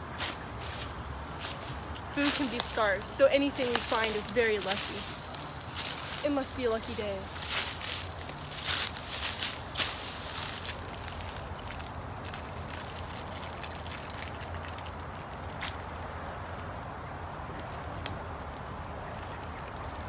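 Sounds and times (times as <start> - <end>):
footsteps in dry leaves: 0.0 - 19.8
low background hum: 0.0 - 20.0.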